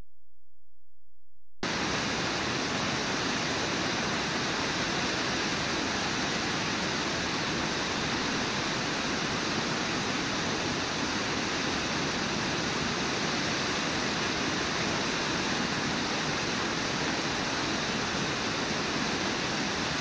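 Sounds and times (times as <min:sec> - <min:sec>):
rapids rushing: 0:01.6 - 0:20.0.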